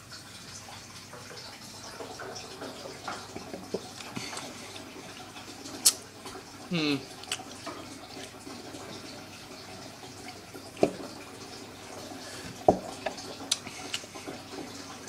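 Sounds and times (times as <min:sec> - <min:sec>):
lip smacks and mouth clicks: 0:13.5 - 0:14.1.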